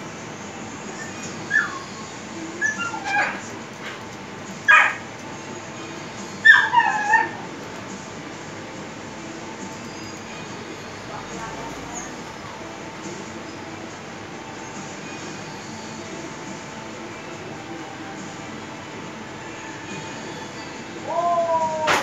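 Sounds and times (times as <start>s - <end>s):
dog whimpering and yipping: 0.9s - 3.5s, 4.7s - 5.0s, 6.4s - 7.4s.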